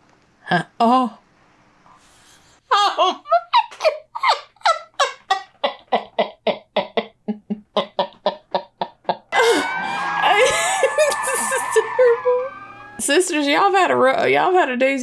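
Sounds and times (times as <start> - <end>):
woman laughing hard: 2.7 - 12.5.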